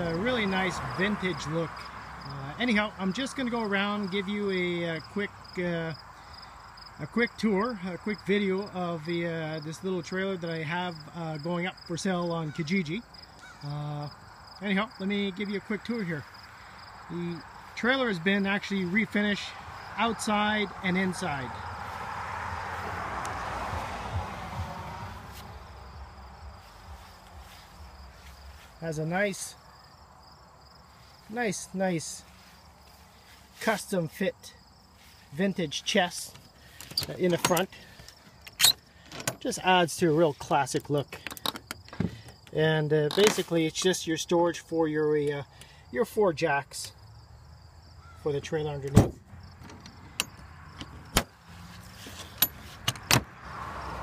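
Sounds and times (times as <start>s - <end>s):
crickets chirping: 0.0s - 54.0s
rustling noise: 26.4s - 28.8s, 51.5s - 52.9s
draw latches clacking: 52.1s - 53.3s.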